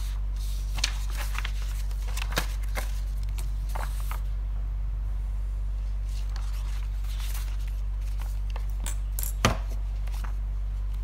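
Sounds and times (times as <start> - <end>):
paper rustling: 0.0 - 4.3, 5.9 - 8.8
low electrical hum: 0.0 - 11.0.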